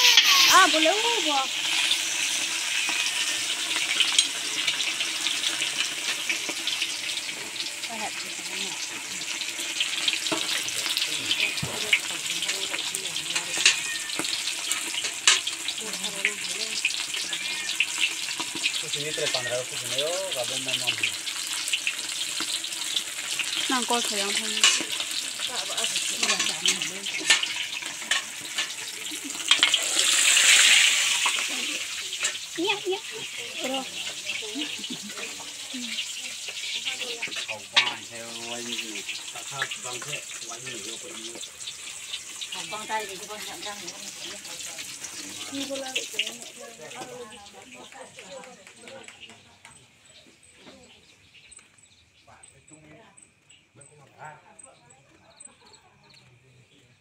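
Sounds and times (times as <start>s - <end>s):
oil sizzling while deep-frying: 0.0s - 52.4s.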